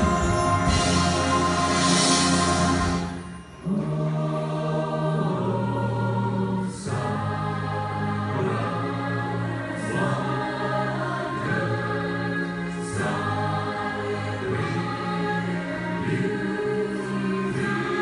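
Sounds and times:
orchestra playing held chords: 0.0 - 5.6
large choir singing: 0.0 - 18.0.

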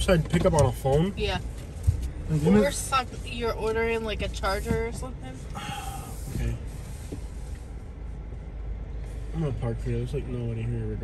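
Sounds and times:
car engine rumble: 0.0 - 11.0
road noise: 0.0 - 11.0.

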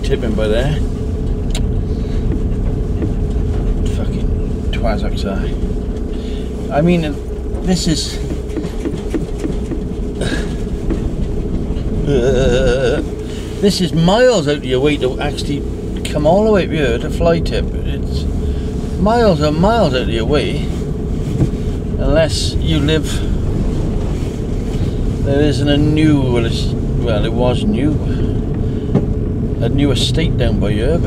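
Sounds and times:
engine and road rumble: 0.0 - 31.0
van body knocks and rattles: 7.5 - 12.1.

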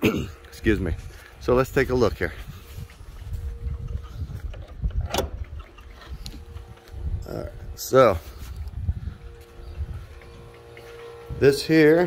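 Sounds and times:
wind buffeting microphone: 0.6 - 12.0.

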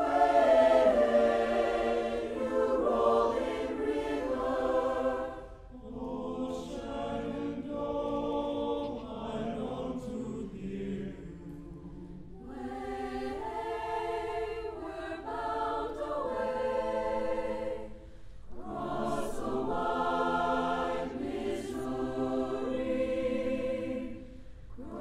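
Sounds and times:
choir singing held chords: 0.0 - 25.0.

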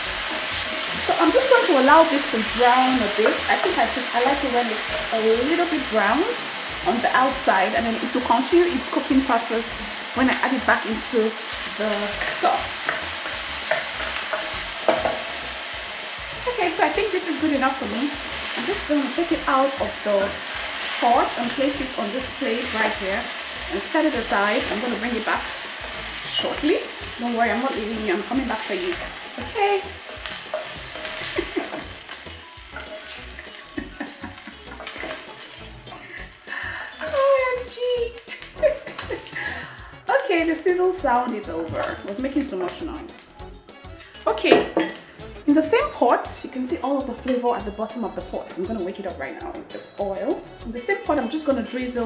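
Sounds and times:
chicken sizzling in oil: 0.0 - 52.0
woman's voice: 1.0 - 12.8, 16.4 - 25.5, 26.3 - 30.0, 36.5 - 43.3, 44.2 - 44.9, 45.5 - 52.0
wooden spatula scraping a pot: 10.7 - 37.2.

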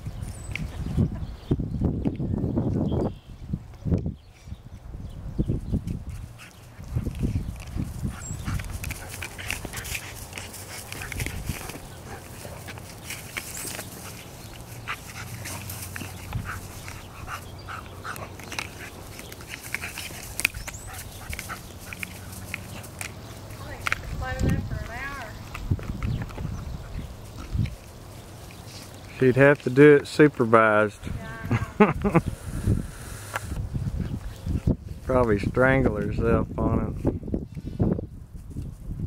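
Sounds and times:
puppy scuffling in grass: 5.5 - 31.4
puppy noises: 8.0 - 23.3.

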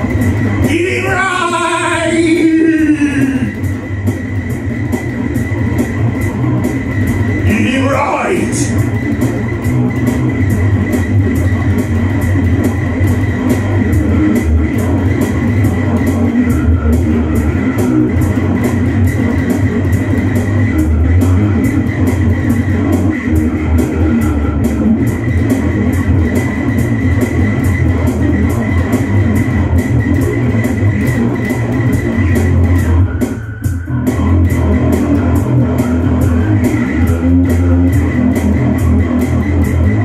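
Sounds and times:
electric bass guitar: 0.0 - 40.0
rock rhythm track: 0.0 - 40.0.

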